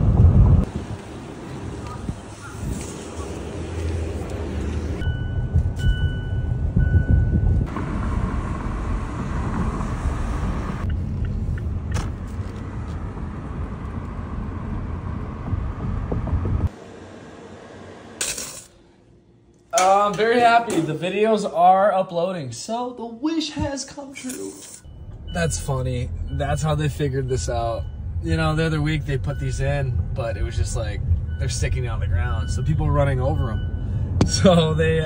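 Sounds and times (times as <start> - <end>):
car engine rumble from inside cabin: 0.0 - 18.2, 24.8 - 35.0
high electronic beep: 24.6 - 30.4, 31.3 - 34.4.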